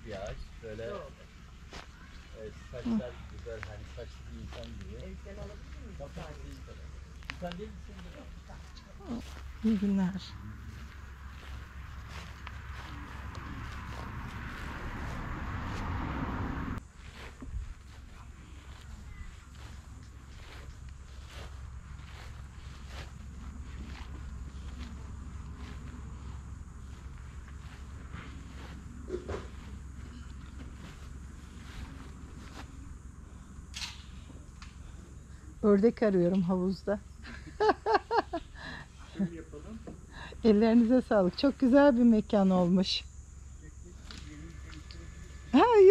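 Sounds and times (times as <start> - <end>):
soft footsteps: 3.0 - 33.4
low rumble: 9.0 - 16.9.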